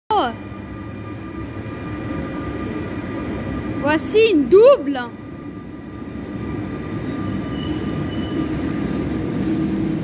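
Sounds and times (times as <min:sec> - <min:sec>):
train low rumble: 0:00.1 - 0:10.0.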